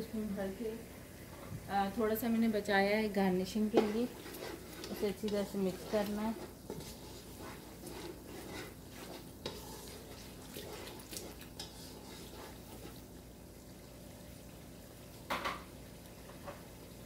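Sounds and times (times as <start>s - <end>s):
faint sizzle of frying: 0.0s - 17.0s
wooden spoon scraping a pan: 2.2s - 13.1s.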